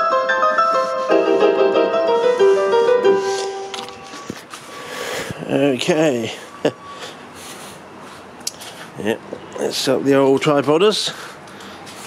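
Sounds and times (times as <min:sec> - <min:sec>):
electronic keyboard piano melody: 0:00.0 - 0:04.6.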